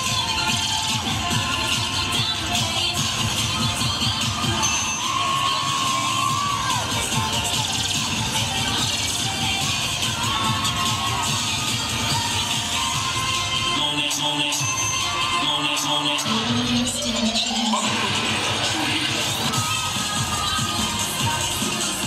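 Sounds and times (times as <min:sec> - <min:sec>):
fast-beat music over loudspeakers: 0:00.0 - 0:22.0
crowd cheering: 0:04.5 - 0:07.7
children shouting: 0:04.6 - 0:07.2.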